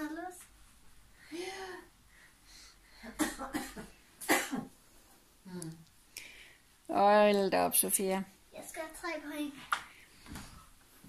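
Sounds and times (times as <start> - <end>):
person coughing: 3.0 - 4.7.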